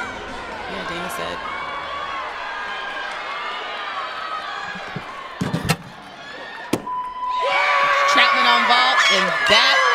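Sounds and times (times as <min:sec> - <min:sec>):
arena crowd noise: 0:00.0 - 0:09.9.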